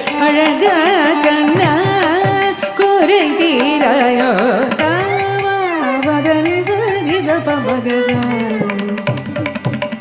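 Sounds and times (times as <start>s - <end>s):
woman singing fast melody: 0.0s - 9.7s.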